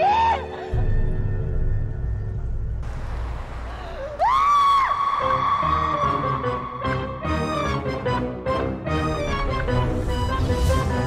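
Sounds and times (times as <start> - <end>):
high-pitched scream: 4.2 - 6.9.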